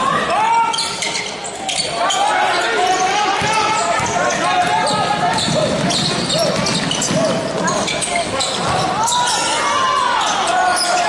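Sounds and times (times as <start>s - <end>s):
voices in a hall: 0.0s - 11.0s
basketball bouncing on hardwood floor: 3.4s - 7.7s.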